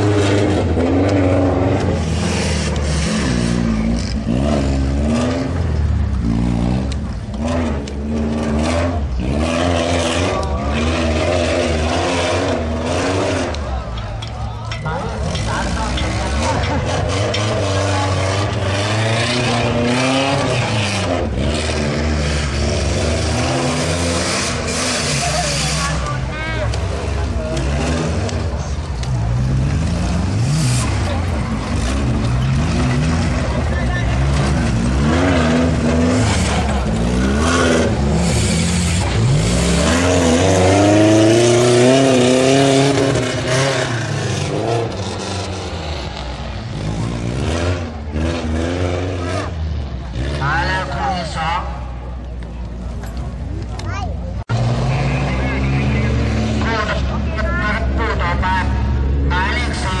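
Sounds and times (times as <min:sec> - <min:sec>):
race car engines revving: 0:00.0 - 1:00.0.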